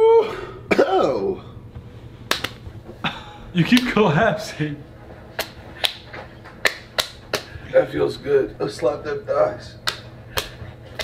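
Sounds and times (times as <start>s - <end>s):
hand slapping bare thighs: 2.3s - 2.6s, 3.7s - 4.0s, 5.3s - 7.5s, 9.8s - 11.0s.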